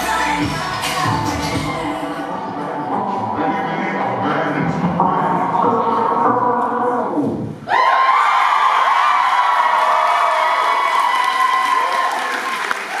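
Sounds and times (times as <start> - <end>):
recorded pop song: 0.0 - 7.6
audience cheering and applause: 7.6 - 13.0.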